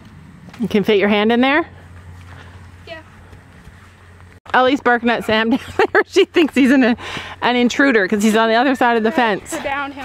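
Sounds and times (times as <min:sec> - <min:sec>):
horse hooves walking: 0:00.0 - 0:10.0.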